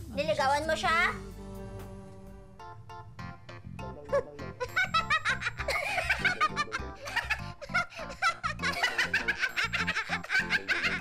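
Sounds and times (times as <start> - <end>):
background music: 0.0 - 11.0
woman laughing hard: 4.6 - 11.0.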